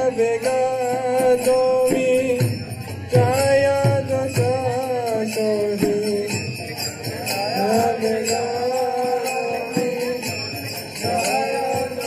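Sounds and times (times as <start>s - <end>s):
drum strokes: 0.0s - 12.0s
small hand cymbals jingling: 0.0s - 12.0s
person singing a chant: 7.1s - 12.0s.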